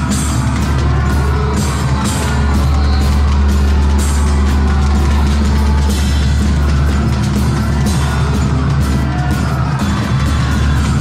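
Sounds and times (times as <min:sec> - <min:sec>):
drum kit with cymbal hits: 0:00.0 - 0:11.0.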